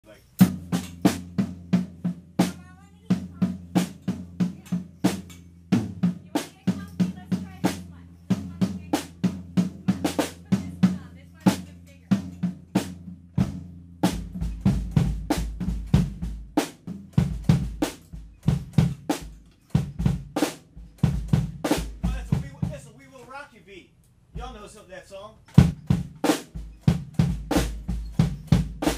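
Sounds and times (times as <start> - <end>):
drum kit steady beat: 0.0 - 28.9.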